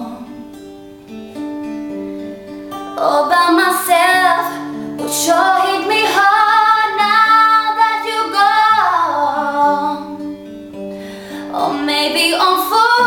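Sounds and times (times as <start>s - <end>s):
woman singing: 0.0s - 0.4s, 3.0s - 10.3s, 11.3s - 13.0s
acoustic guitar: 0.0s - 13.0s.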